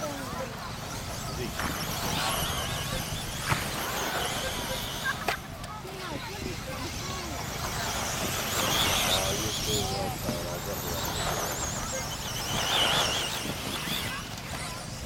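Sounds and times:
rc car motors whining: 0.0 - 15.0.

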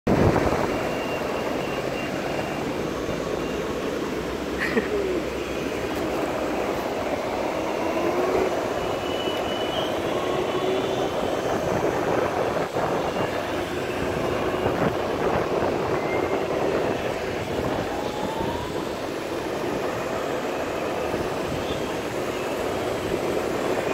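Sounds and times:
skateboard wheels rumbling on asphalt: 0.1 - 1.6, 2.2 - 23.9.

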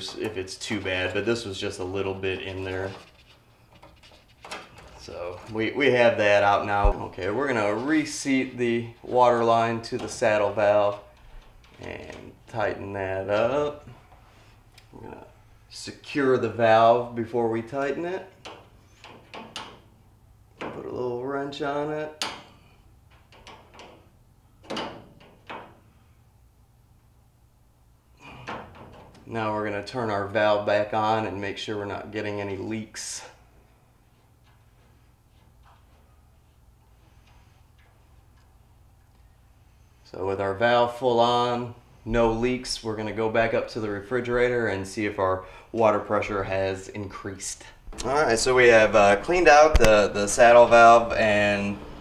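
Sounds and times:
low steady hum: 0.0 - 52.0.

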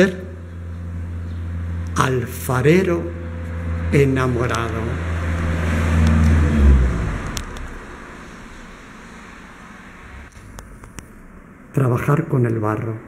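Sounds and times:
low mechanical rumble: 0.0 - 11.9.

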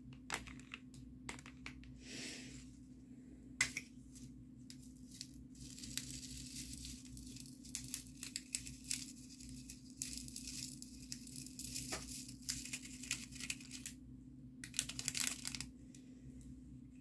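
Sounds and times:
steady low hum: 0.0 - 14.7, 15.6 - 17.0
clicks and crinkling by hand: 4.7 - 14.0, 14.6 - 15.7.

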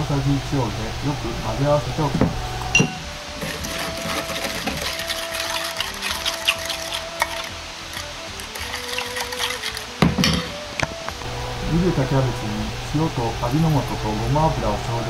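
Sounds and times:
soft background music: 0.1 - 15.0
spoon clatter: 2.8 - 10.6.

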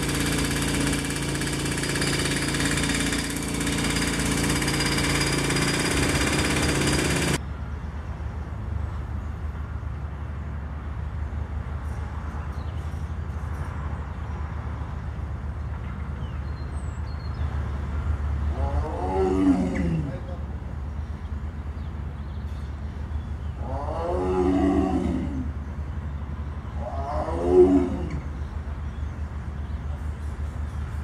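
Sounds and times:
big cat calling: 18.5 - 20.5, 23.5 - 25.7, 26.7 - 28.4.

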